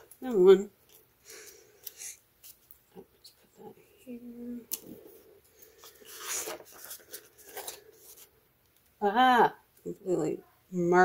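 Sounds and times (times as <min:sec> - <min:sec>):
paper sticker rustling: 0:04.7 - 0:08.3.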